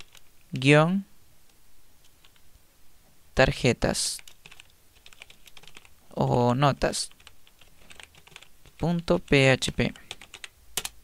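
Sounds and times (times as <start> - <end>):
computer keyboard typing: 0.0 - 0.7, 2.0 - 2.4, 4.2 - 5.9, 7.0 - 11.0.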